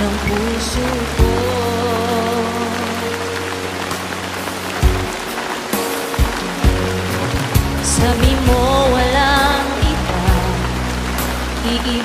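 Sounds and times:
rain hissing: 0.0 - 12.0
sustained instrumental chords: 0.0 - 12.0
drum hits: 4.8 - 9.0.

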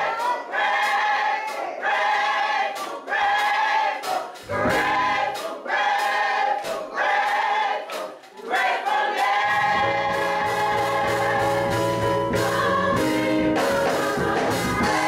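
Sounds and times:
gospel choir singing: 0.0 - 15.0.

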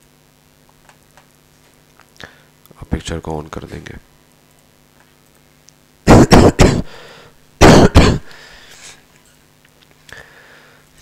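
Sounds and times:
man coughing: 6.1 - 8.4.

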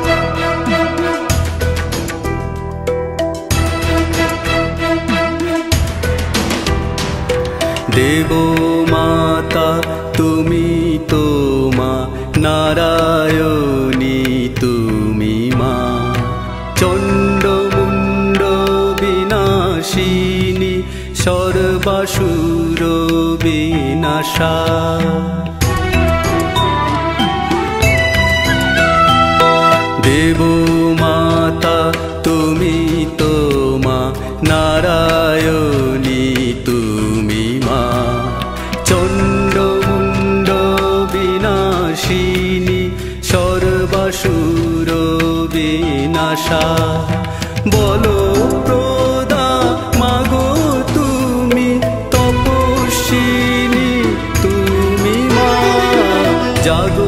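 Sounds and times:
percussion strokes: 0.0 - 15.8, 16.8 - 45.7, 46.4 - 57.0
instrumental accompaniment: 0.0 - 57.0
person singing devotional song: 7.7 - 25.9, 29.9 - 57.0
person singing long gliding notes: 47.6 - 57.0.

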